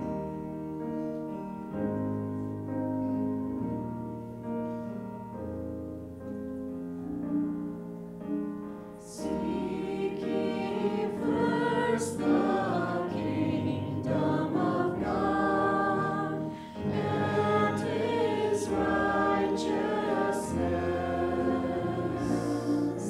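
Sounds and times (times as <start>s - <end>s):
keyboard: 0.0s - 23.0s
voices singing in harmony: 9.0s - 23.0s.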